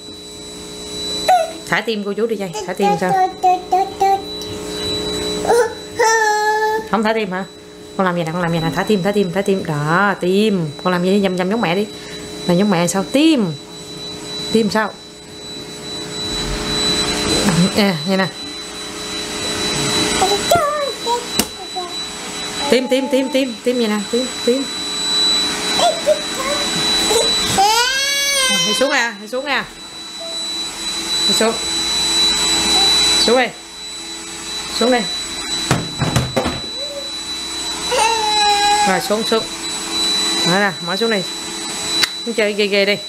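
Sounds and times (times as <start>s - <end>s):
household appliance running with whine: 0.0s - 43.0s
toddler vocalizing: 1.3s - 1.6s, 2.6s - 4.3s, 5.4s - 6.9s, 25.8s - 28.9s, 36.7s - 37.2s, 37.9s - 39.0s
knocks: 35.7s - 36.7s.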